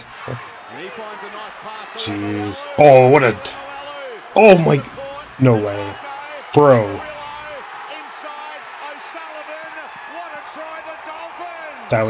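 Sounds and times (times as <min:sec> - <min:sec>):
male commentator speaking: 0:00.0 - 0:12.0
stadium crowd noise: 0:00.0 - 0:12.0.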